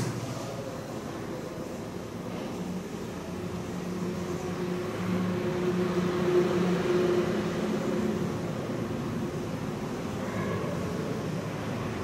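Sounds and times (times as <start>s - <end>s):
mechanical room hum: 0.0s - 12.0s.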